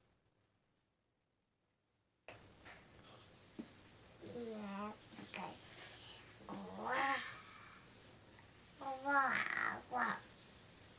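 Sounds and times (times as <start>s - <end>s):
toddler babbling: 4.2s - 5.6s, 6.5s - 7.8s, 8.8s - 10.2s.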